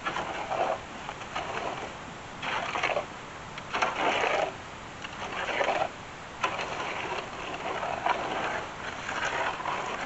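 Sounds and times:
shovel scraping dirt: 0.0s - 3.1s, 3.7s - 10.0s.

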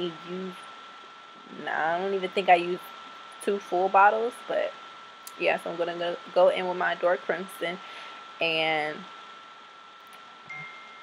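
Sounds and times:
steady high whine: 0.0s - 11.0s
phone notification chimes: 10.5s - 11.0s.

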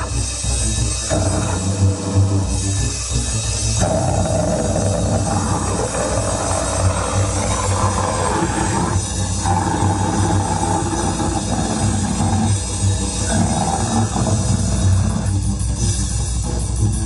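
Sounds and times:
bass guitar: 0.0s - 17.0s
drums: 0.0s - 17.0s.

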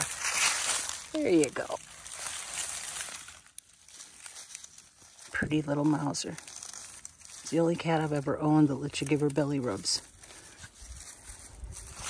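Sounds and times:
dry leaves rustling and crackling: 0.0s - 12.0s.

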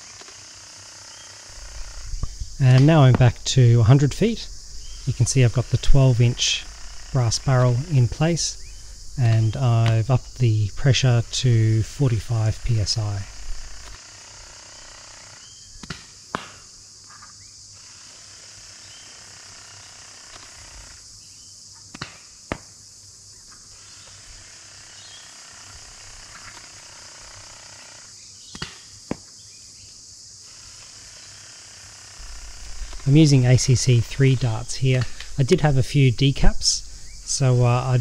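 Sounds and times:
insects droning: 0.0s - 38.0s.

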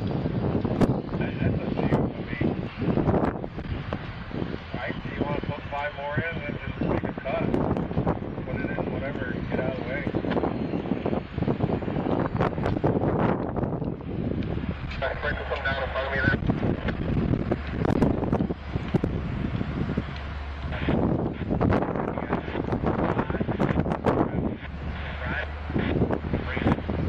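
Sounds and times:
diesel locomotive engine rumble: 0.0s - 27.0s
wind buffeting microphone: 0.0s - 27.0s.

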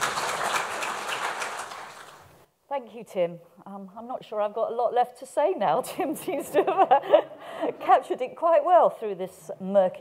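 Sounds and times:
audience applauding: 0.0s - 2.4s.

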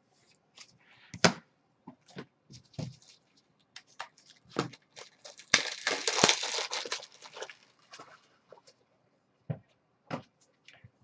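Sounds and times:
plastic packaging crinkling: 2.8s - 8.8s.

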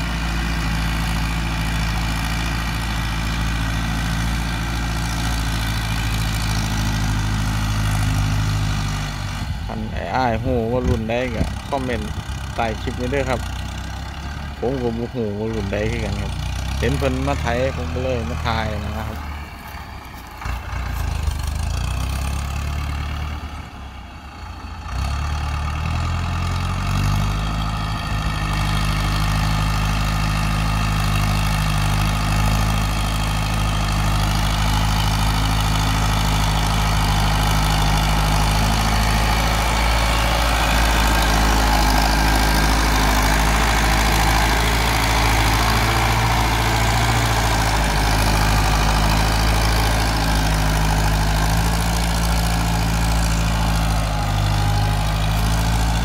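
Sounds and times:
tractor diesel engine under load: 0.0s - 56.0s.

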